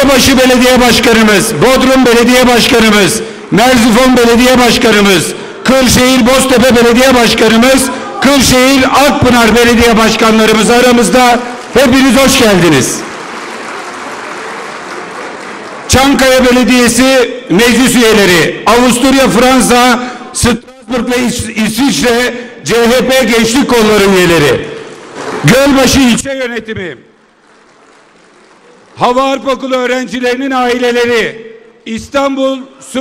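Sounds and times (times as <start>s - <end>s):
low hiss of crowded hall: 0.0s - 33.0s
audience applauding: 11.0s - 16.3s, 27.3s - 29.0s.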